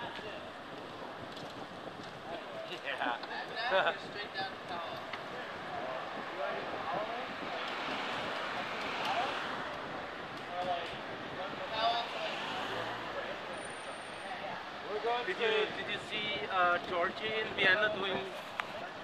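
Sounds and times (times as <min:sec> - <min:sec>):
city street traffic noise: 0:00.0 - 0:19.0.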